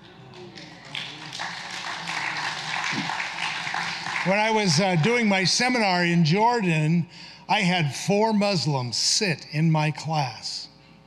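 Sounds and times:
congregation applauding: 0.0 - 6.0.

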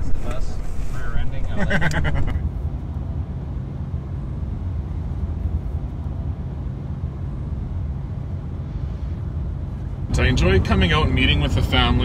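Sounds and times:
road and engine rumble inside truck: 0.0 - 12.0.

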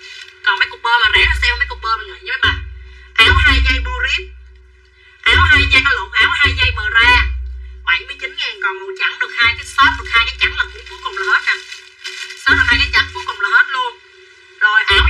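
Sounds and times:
woman talking quickly: 0.4 - 2.6, 5.3 - 7.3, 7.9 - 11.7, 12.4 - 14.0, 14.6 - 15.0.

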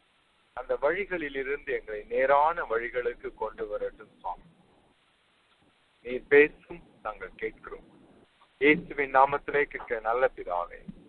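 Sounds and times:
man preaching: 0.6 - 4.4, 6.1 - 7.8, 8.6 - 10.8.

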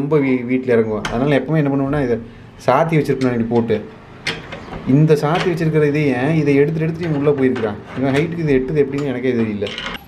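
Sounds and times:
metal latch clinking: 3.2 - 5.8, 6.4 - 10.0.

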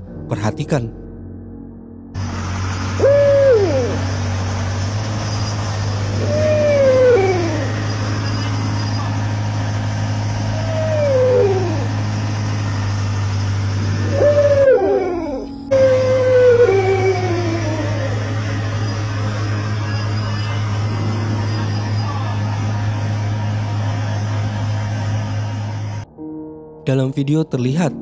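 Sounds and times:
steady low hum: 1.0 - 26.1.

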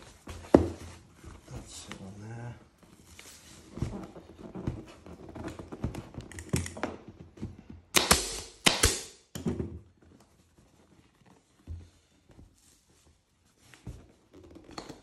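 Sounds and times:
vinyl cover rustling: 0.0 - 7.9, 9.8 - 15.0
staple gun firing: 8.0 - 9.2.

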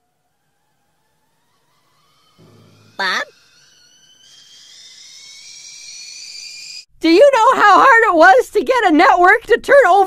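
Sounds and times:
high whistling tone: 0.0 - 6.9.

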